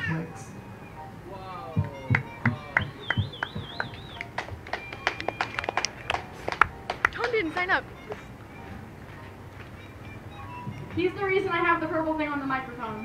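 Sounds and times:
audience clapping: 1.8s - 8.3s
audience finger-snapping: 2.1s - 8.3s.

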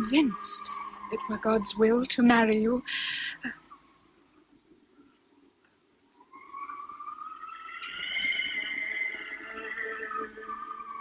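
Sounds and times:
eerie wailing howl: 0.0s - 2.8s, 6.2s - 11.0s.

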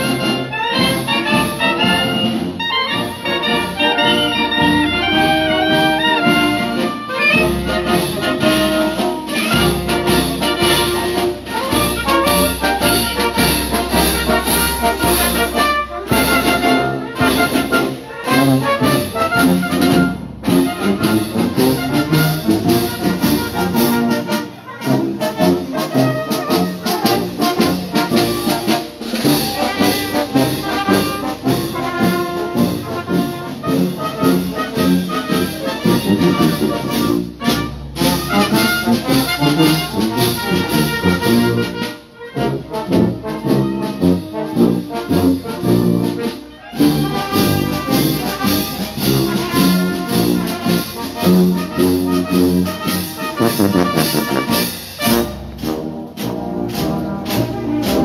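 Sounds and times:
brass band playing a march: 0.0s - 58.0s.

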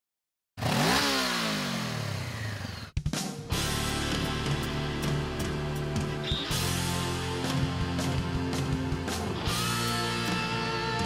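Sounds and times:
motorcycle engine revving: 0.6s - 11.0s.

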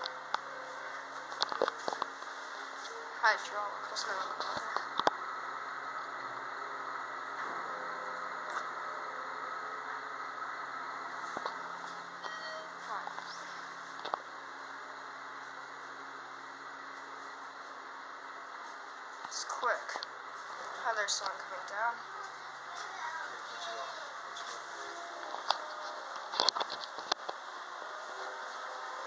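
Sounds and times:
elevator machinery hum: 0.0s - 29.0s.

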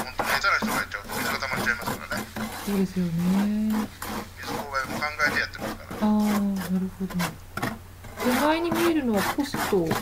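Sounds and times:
surrounding talk: 8.2s - 10.0s.

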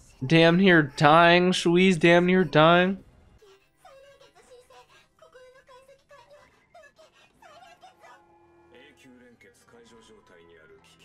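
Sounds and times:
high-pitched female voice speaking: 3.8s - 8.2s.

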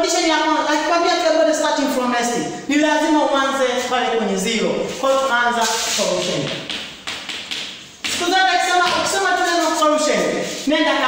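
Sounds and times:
chalk tapping and scraping on blackboard: 5.0s - 10.7s.

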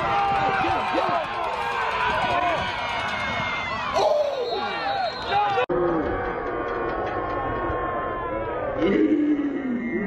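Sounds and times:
many voices shouting: 0.0s - 10.0s.

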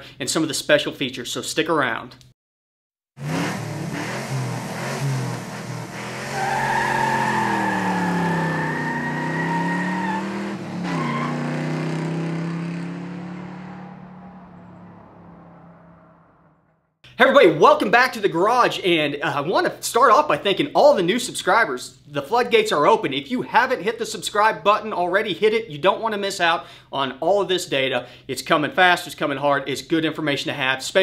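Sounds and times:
car engine revving: 3.2s - 16.7s
high steady squeal: 6.2s - 10.2s.

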